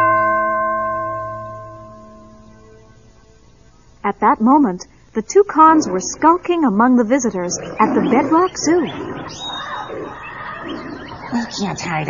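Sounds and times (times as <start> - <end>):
bell-like chime: 0.0 - 3.0.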